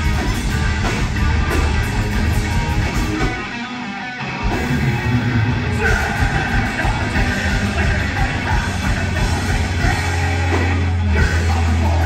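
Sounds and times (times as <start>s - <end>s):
live metal band playing: 0.0s - 12.0s.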